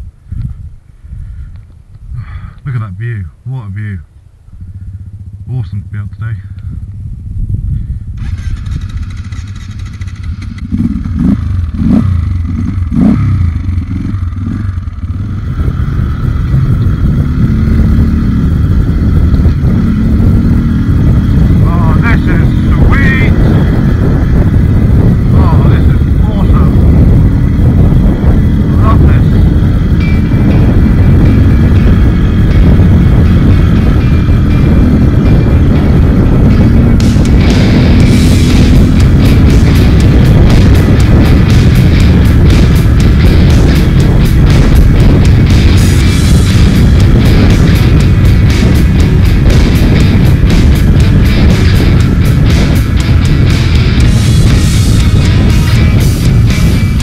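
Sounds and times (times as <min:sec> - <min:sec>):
motorcycle engine revving: 0:04.5 - 0:05.9, 0:06.6 - 0:57.0.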